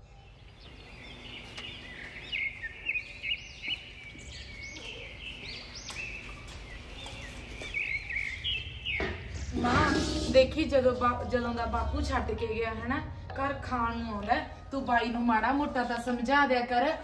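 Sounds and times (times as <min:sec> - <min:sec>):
small birds chirping: 0:00.0 - 0:14.7.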